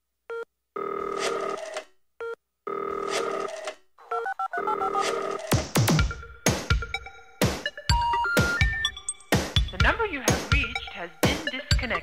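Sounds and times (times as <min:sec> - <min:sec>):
telephone ringing: 0:00.3 - 0:05.6
telephone beeps: 0:04.1 - 0:05.5.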